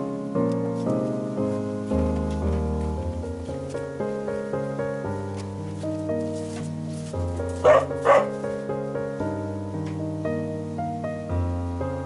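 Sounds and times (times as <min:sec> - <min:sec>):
slow piano music: 0:00.0 - 0:12.0
dog barking: 0:07.6 - 0:08.4.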